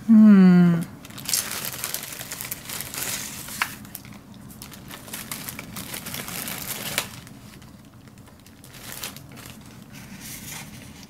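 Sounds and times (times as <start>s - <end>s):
paper and plastic crinkling: 1.0s - 11.0s.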